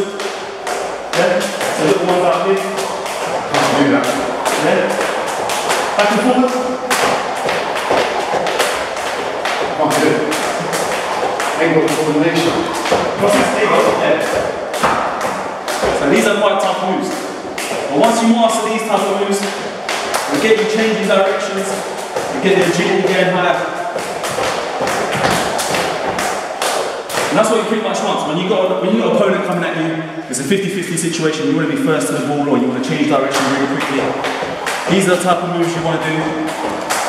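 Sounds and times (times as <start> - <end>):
skipping ropes slapping floor mat: 0.0 - 29.3, 32.8 - 37.0
feet landing on rubber mat: 23.9 - 27.4.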